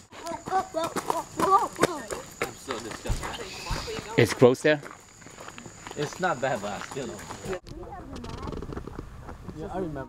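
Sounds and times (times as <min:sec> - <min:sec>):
footsteps on gravel: 0:00.0 - 0:07.7
people talking: 0:00.2 - 0:04.7, 0:06.0 - 0:08.7.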